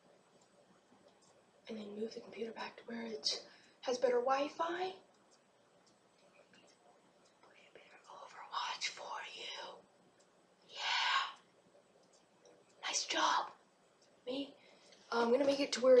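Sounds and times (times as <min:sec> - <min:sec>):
boy whispering: 0:07.5 - 0:09.8, 0:10.7 - 0:11.4, 0:12.8 - 0:13.6.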